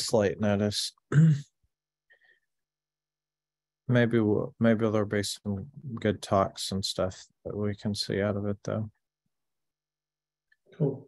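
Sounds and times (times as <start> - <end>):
person clearing throat: 1.1 - 1.5.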